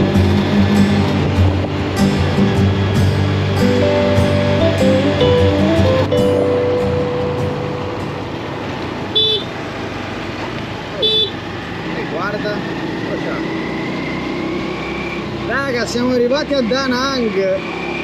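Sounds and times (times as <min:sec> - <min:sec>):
background music: 0:00.0 - 0:08.7
road traffic noise: 0:00.0 - 0:18.0
vehicle horn toots: 0:09.1 - 0:09.5, 0:11.0 - 0:11.4.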